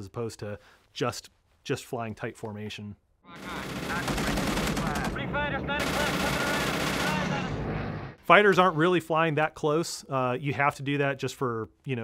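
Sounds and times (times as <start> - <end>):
propeller planes flying past: 3.5 - 8.2.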